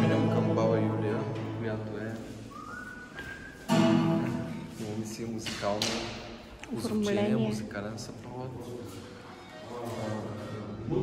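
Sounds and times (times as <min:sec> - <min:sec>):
acoustic guitar playing: 0:00.0 - 0:05.4
thin whistle-like note: 0:02.5 - 0:04.5.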